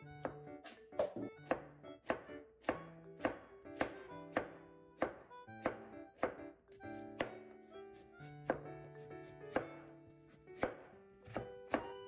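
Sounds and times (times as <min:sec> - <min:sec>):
soft background music: 0:00.0 - 0:12.0
knife chopping on cutting board: 0:00.2 - 0:07.4, 0:08.0 - 0:12.0.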